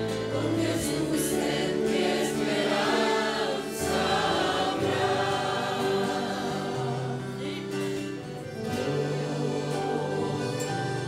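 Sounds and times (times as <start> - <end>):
congregation singing a hymn: 0.0 - 11.0
instrumental accompaniment: 0.0 - 11.0.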